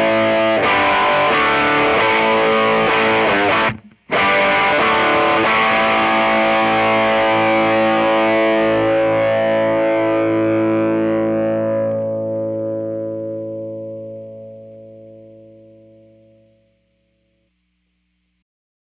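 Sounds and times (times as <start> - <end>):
overdriven electric guitar chord: 0.0 - 16.8.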